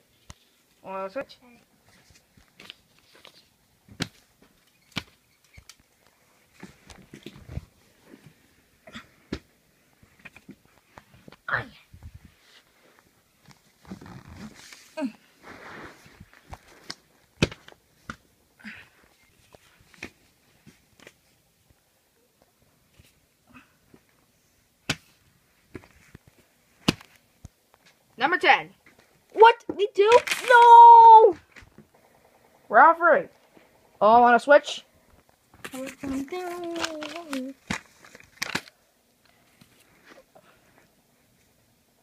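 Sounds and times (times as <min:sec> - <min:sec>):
rustling of plush toys: 0:00.0 - 0:18.3, 0:29.0 - 0:32.3, 0:35.0 - 0:41.6
fabric rustling: 0:11.9 - 0:18.0.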